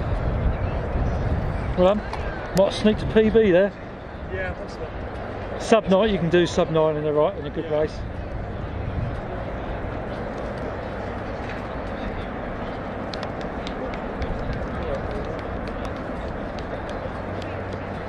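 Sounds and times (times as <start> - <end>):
distant voices: 0.0 - 18.0.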